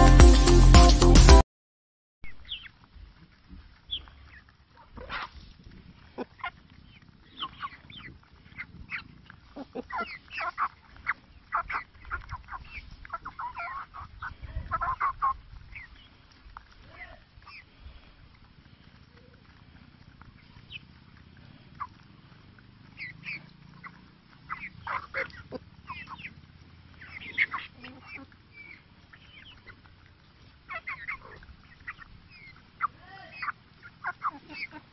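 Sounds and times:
chickens clucking: 2.3 - 34.9.

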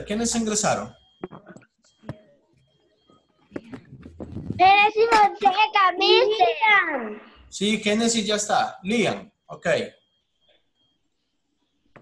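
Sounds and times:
child's high-pitched voice: 4.6 - 7.4.

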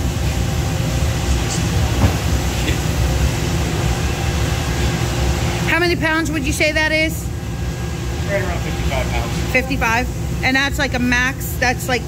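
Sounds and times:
coffee roaster cooling tray rumble: 0.0 - 12.0.

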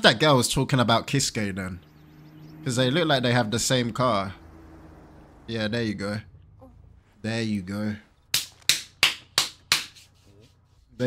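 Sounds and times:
hand claps: 8.3 - 10.2.

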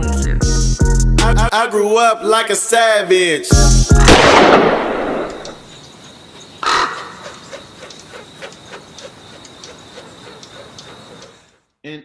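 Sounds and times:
crow cawing: 5.6 - 11.6
faint ticks: 7.3 - 11.6.

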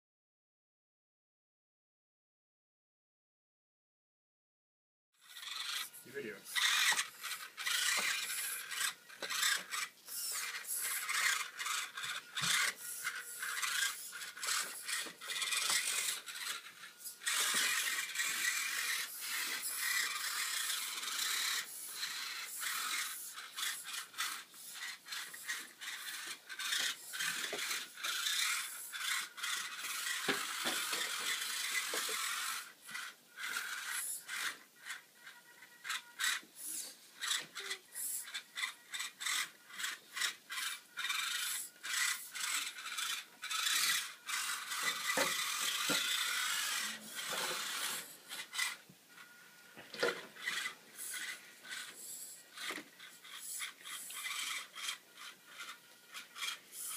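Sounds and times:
small electric motor whirring: 5.2 - 56.9
tyres scraping over plastic: 43.5 - 48.8.

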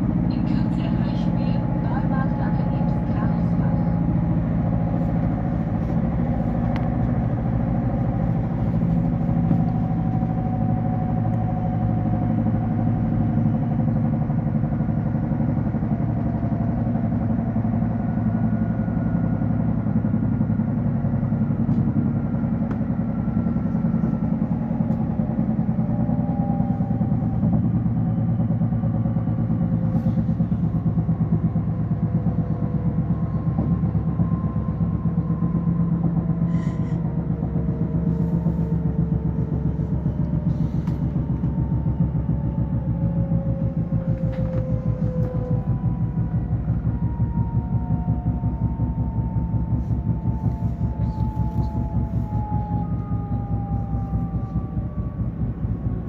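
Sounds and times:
train wheels rumbling on track: 0.0 - 56.0.

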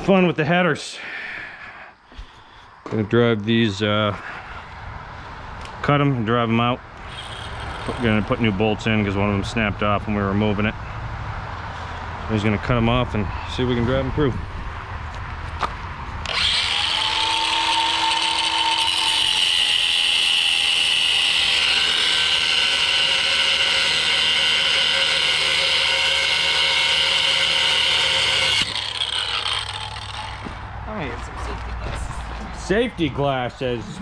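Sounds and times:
angle grinder cutting steel: 7.0 - 8.8, 16.2 - 30.7.

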